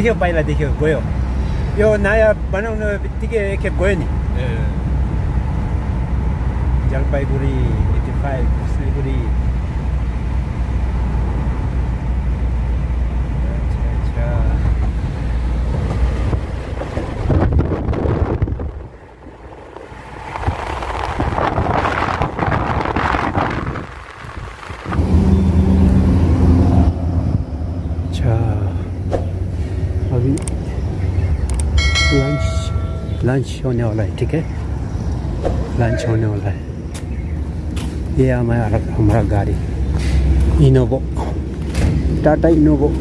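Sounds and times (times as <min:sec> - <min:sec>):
car cabin road rumble: 0:00.0 - 0:43.0
rushing wind noise: 0:00.0 - 0:43.0
quick clicks: 0:31.4 - 0:31.8
bright bell chime: 0:31.8 - 0:33.4.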